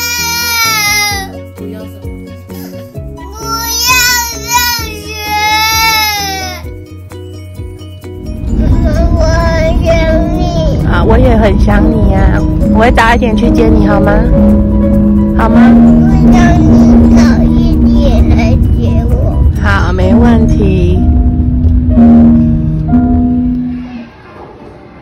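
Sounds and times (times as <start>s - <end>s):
young child crying: 0.0s - 1.4s, 2.6s - 6.7s
music with plucked notes and bass: 0.0s - 23.9s.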